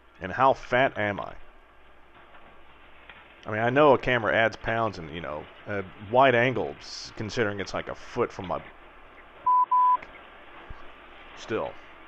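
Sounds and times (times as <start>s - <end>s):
short electronic beeps: 9.5s - 10.0s.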